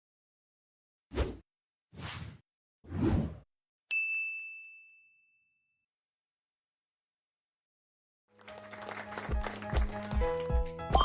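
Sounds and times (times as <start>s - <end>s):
bright bell-like ding: 3.9s - 5.8s.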